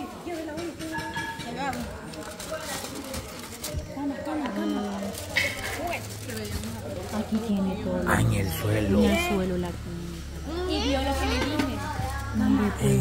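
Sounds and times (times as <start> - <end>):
indistinct background voices: 1.8 - 13.0.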